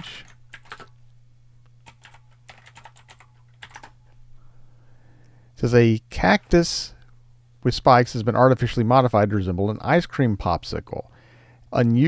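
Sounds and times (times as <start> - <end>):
faint keyboard typing: 0.0 - 1.0, 1.7 - 4.1.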